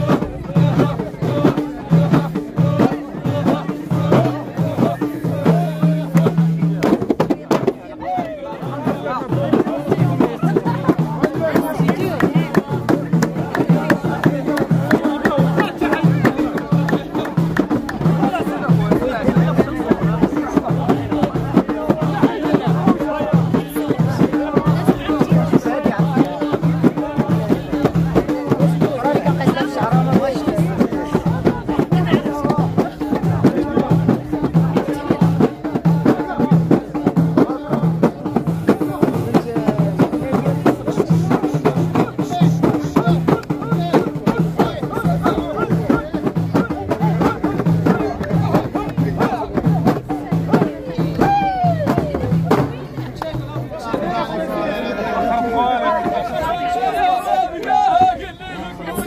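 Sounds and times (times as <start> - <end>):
men singing together: 0.0 - 52.7
frame drums beating: 0.0 - 54.4
crowd voices: 0.0 - 59.0.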